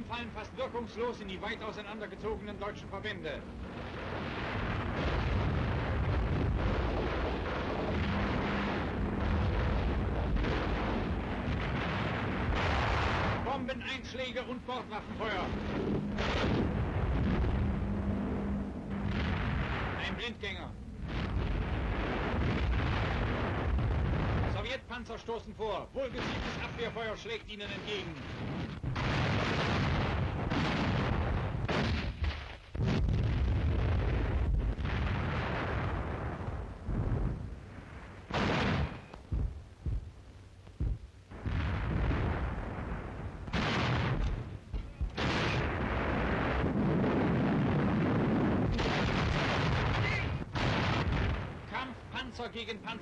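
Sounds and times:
artillery and tank-gun fire: 0.0 - 25.1, 25.7 - 40.1, 40.8 - 53.0
shell explosions rumbling: 0.0 - 53.0.

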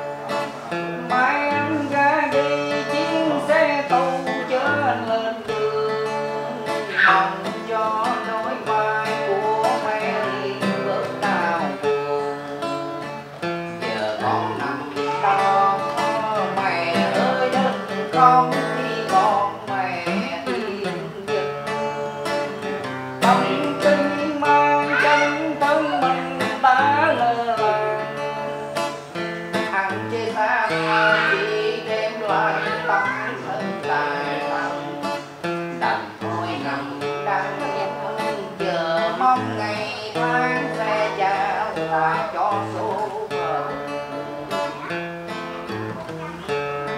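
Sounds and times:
acoustic guitar: 0.0 - 46.9
man singing: 0.0 - 46.9.

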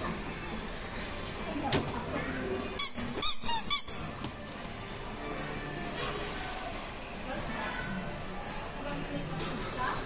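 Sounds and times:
high-pitched squeaks: 2.8 - 4.2.

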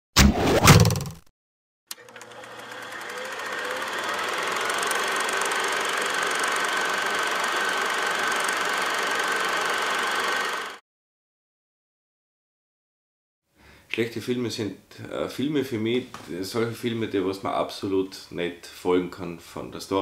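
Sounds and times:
motor-driven machine rattling: 1.9 - 10.8.

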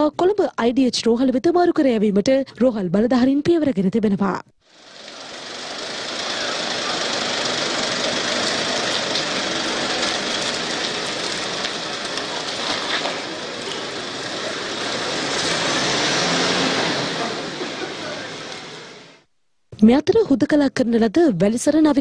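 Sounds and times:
steady outdoor hiss: 4.6 - 19.3
van engine running: 4.7 - 19.3.

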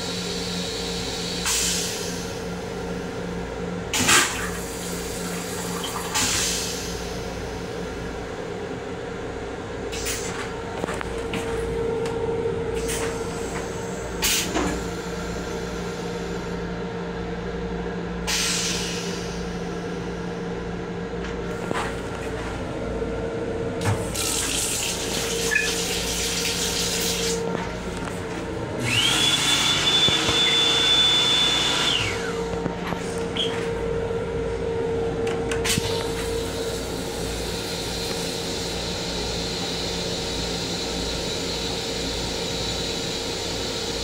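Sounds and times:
rail car hum: 0.0 - 44.0
hand dryer blowing: 28.8 - 32.5.

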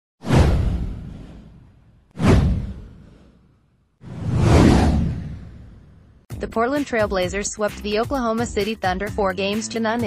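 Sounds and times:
whoosh with deep boom: 0.2 - 6.3.

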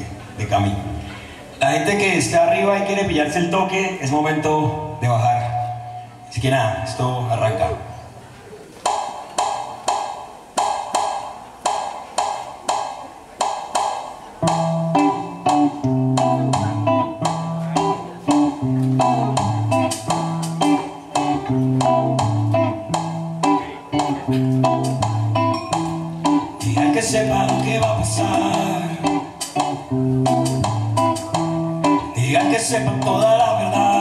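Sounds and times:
electric guitar plucked figure: 8.9 - 34.0
low bass notes: 14.4 - 34.0.

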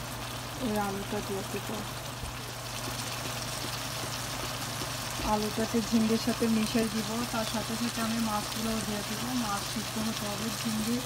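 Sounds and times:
curry bubbling in a pan: 0.0 - 11.0.

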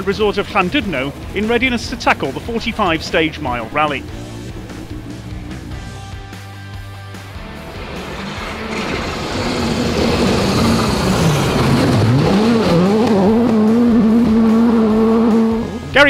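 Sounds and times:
rally car engine at full throttle: 0.0 - 16.0.

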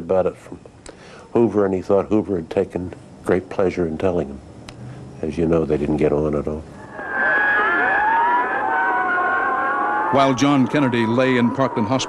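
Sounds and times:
police sirens wailing: 6.8 - 12.0.

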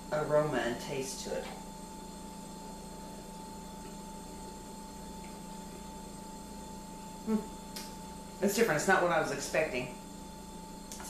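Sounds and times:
low electrical hum: 0.0 - 11.0
mid-pitched electrical buzzing: 0.0 - 11.0.

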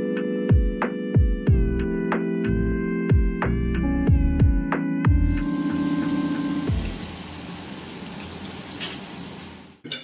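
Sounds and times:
background music: 0.0 - 7.2
meat sizzling in oil: 5.5 - 9.8.

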